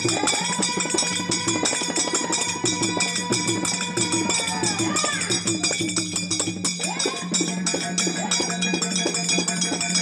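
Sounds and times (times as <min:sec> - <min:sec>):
person singing: 0:00.0 - 0:05.6
hand drum playing: 0:00.0 - 0:07.6
metal jingles ringing: 0:00.0 - 0:10.0.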